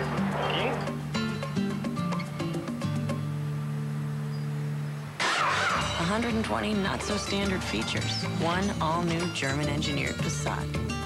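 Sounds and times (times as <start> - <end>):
warbling car sound effect: 0.0 - 1.0.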